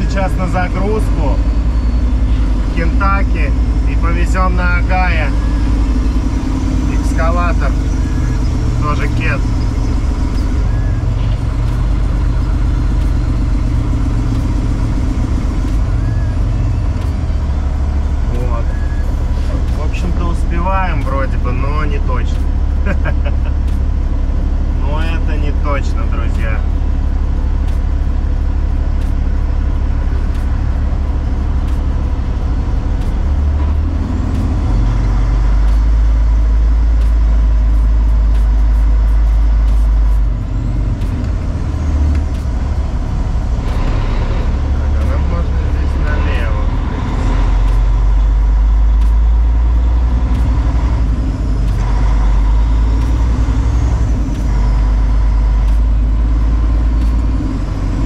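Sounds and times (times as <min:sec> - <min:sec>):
truck diesel engine droning: 0:00.0 - 0:58.0.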